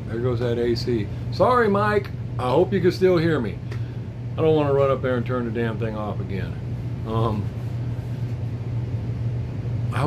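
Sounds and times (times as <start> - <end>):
air conditioner humming: 0.0 - 10.0.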